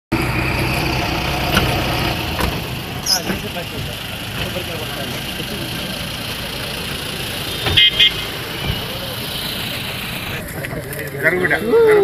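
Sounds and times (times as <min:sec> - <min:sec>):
car engine idling: 0:00.1 - 0:11.9.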